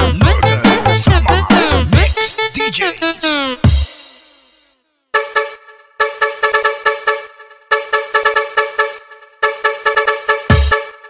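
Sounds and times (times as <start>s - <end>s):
car horn honking in dance remix: 0.0s - 4.0s, 4.8s - 11.0s.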